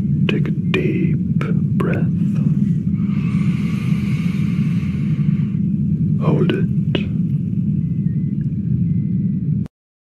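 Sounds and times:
low mechanical rumble: 0.0s - 9.7s.

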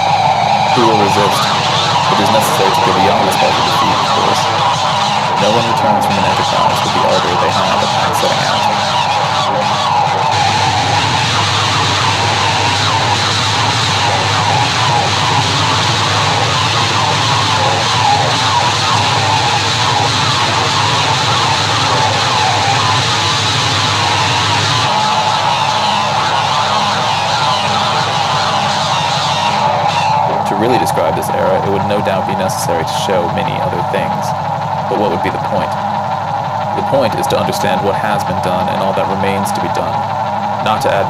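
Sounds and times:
electric bass: 0.0s - 41.0s
ringing siren-like tone: 0.0s - 41.0s.

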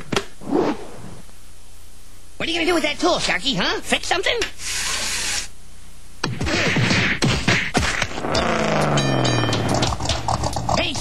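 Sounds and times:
cartoon crack: 6.2s - 10.3s.

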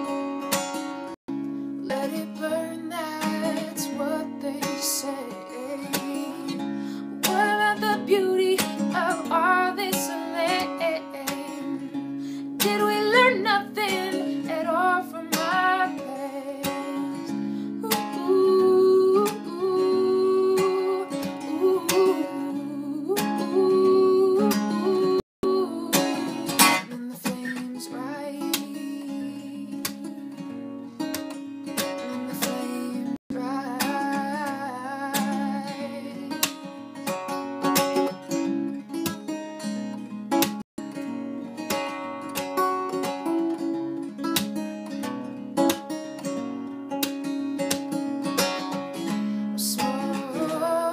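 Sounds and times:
acoustic guitar strumming: 0.0s - 50.9s
woman singing: 1.8s - 30.4s, 31.8s - 37.2s, 48.4s - 50.9s.

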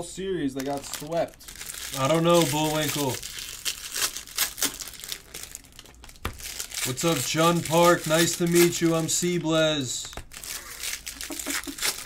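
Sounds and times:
foil wrappers crinkling: 0.4s - 12.0s.

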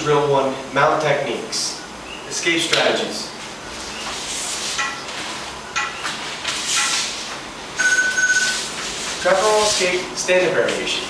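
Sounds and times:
heavy cotton uniforms rustling: 3.3s - 7.8s, 8.4s - 11.0s.

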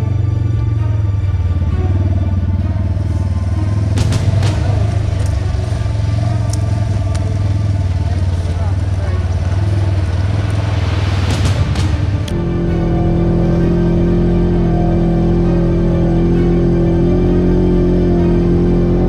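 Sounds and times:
background music: 0.0s - 19.0s
off-road vehicle running: 0.0s - 19.0s
sharp knocks and rattles: 3.8s - 12.4s.

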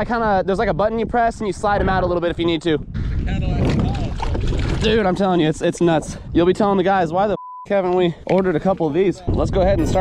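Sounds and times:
wind rumbling on microphone: 0.0s - 7.4s, 8.5s - 10.0s
water sloshing: 3.6s - 5.7s.

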